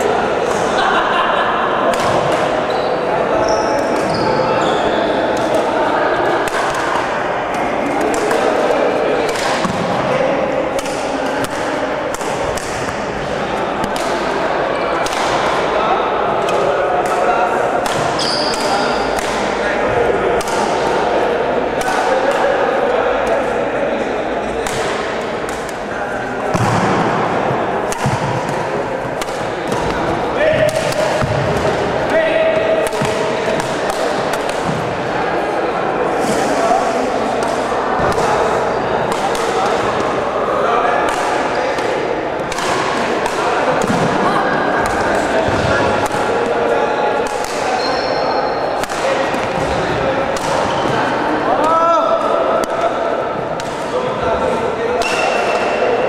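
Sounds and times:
chatter of onlookers: 0:00.0 - 0:56.0
racket hitting shuttlecock: 0:01.9 - 0:02.6, 0:06.3 - 0:10.0, 0:10.6 - 0:15.7, 0:16.4 - 0:19.6, 0:20.3 - 0:21.0, 0:21.8 - 0:22.5, 0:24.6 - 0:25.8, 0:26.4 - 0:35.1, 0:37.4 - 0:40.2, 0:41.0 - 0:44.2, 0:44.8 - 0:47.8, 0:48.8 - 0:51.0.

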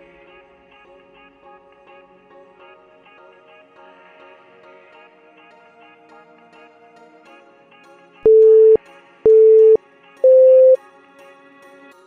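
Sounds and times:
loud electronic beeps: 0:08.3 - 0:10.8.

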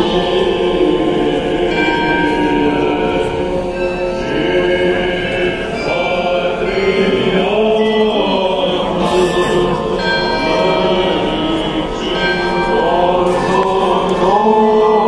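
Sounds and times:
choir chanting: 0:00.0 - 0:15.0
church bells ringing: 0:00.0 - 0:15.0.

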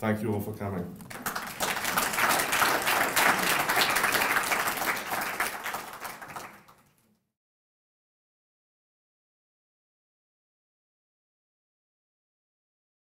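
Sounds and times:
audience applauding: 0:01.1 - 0:07.0.

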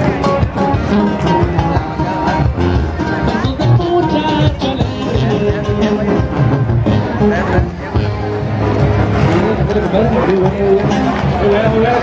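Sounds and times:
band music with pulsing beat: 0:00.0 - 0:12.0
voices: 0:00.0 - 0:12.0.

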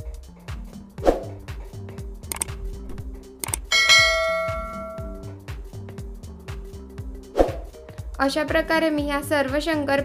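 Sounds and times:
background music with steady beat: 0:00.0 - 0:10.0
click: 0:02.3 - 0:02.6, 0:03.4 - 0:03.7
bell ding sound effect: 0:03.7 - 0:05.3.

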